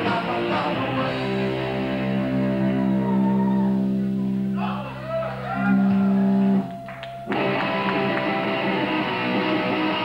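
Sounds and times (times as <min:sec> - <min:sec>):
band playing: 0:00.0 - 0:10.0
electric guitar sustained notes: 0:05.6 - 0:10.0.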